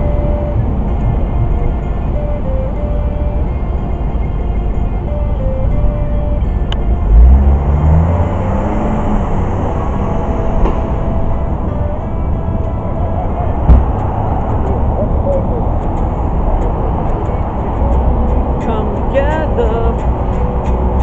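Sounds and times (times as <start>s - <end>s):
electric guitar through amplifier: 0.0s - 21.0s
loud low rumble: 5.6s - 18.6s
low thump: 13.6s - 14.2s.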